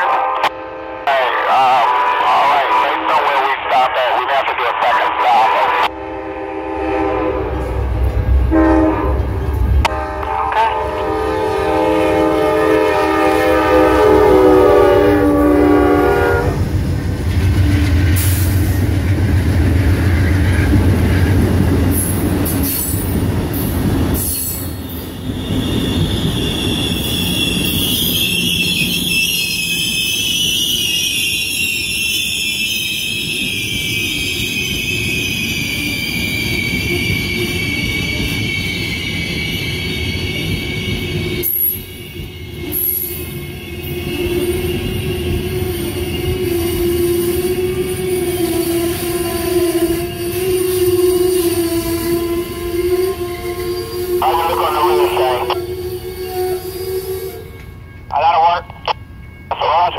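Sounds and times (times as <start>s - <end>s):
diesel locomotives rumbling by: 0.0s - 59.9s
locomotive air horn blasts: 0.2s - 1.2s, 5.9s - 7.9s, 8.5s - 16.6s
train brakes squealing: 22.0s - 58.1s.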